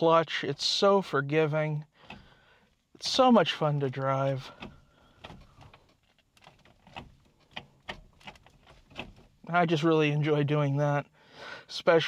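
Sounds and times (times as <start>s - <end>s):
gear lever clicks and clunks: 1.9s - 9.4s.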